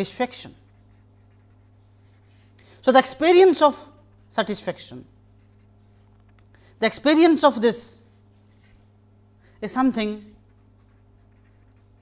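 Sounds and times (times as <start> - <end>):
marker pen writing on paper: 0.7 - 2.6, 10.5 - 12.0.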